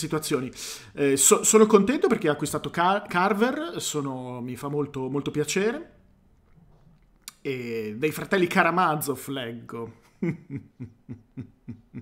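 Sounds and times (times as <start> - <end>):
man chuckling: 10.0 - 12.0.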